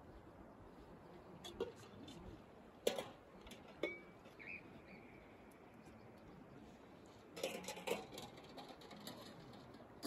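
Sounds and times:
faint outdoor hiss: 0.0s - 10.0s.

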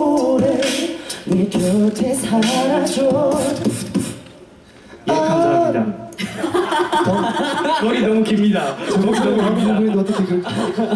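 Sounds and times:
men singing a cappella: 0.0s - 4.2s, 5.0s - 5.9s.

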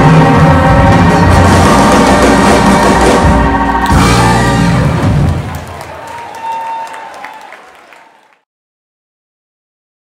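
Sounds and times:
live soul band playing: 0.0s - 5.9s
audience applause: 3.6s - 8.5s.

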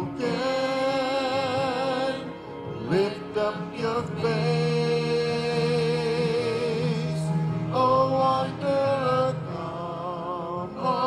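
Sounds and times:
group singing a slow hymn: 0.0s - 11.0s.

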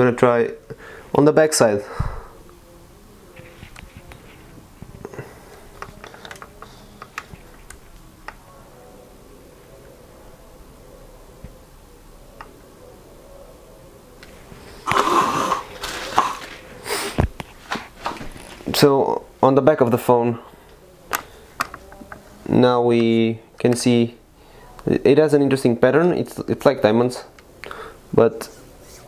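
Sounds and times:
noisy rustling: 0.0s - 10.4s, 11.1s - 25.8s.

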